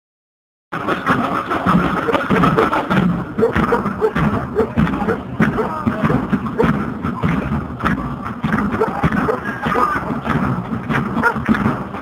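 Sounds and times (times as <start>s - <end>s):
barrel drum struck with sticks: 0.8s - 12.0s
bass drum: 0.8s - 12.0s
snare drum: 0.8s - 12.0s.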